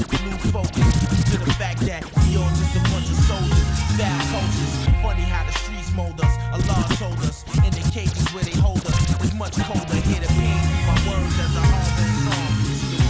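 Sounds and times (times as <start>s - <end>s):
rapping over a beat: 0.0s - 13.0s.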